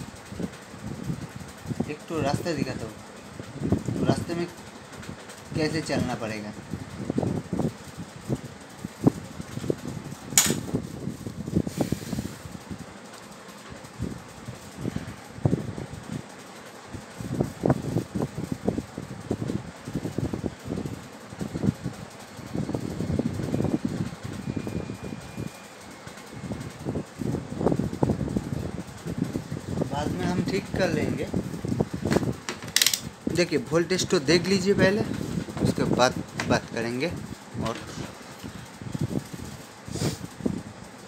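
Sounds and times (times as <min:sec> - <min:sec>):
wind buffeting microphone: 0:06.6 - 0:12.9, 0:26.4 - 0:33.6, 0:34.3 - 0:40.9
sharp click: 0:10.4 - 0:10.7, 0:32.6 - 0:33.1.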